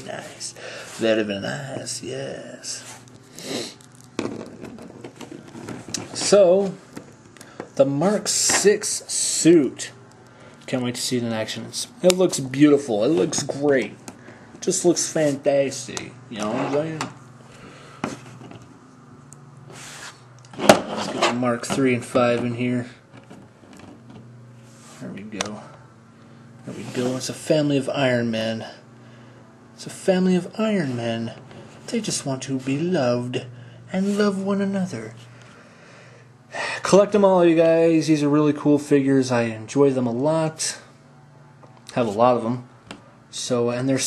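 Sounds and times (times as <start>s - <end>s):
steady low hum: 0.0s - 44.0s
plastic figures set on tabletop: 3.0s - 7.1s.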